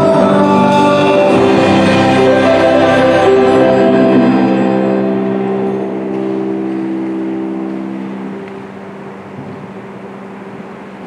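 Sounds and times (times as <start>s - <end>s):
held musical chord: 0.0s - 11.0s.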